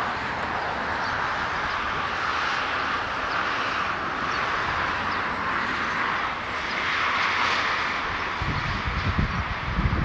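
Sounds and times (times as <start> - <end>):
jet engines hissing: 0.0 - 10.0
wind buffeting microphone: 0.0 - 10.0.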